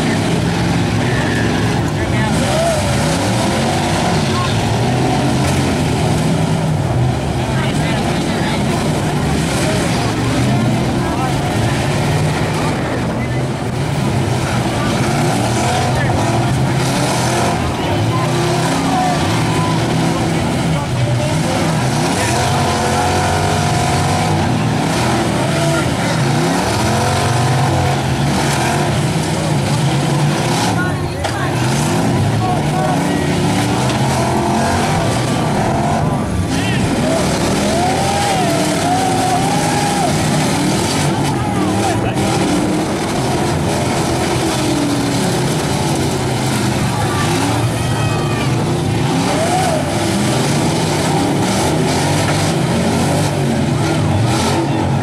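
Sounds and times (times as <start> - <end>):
car engines revving: 0.0 - 55.0.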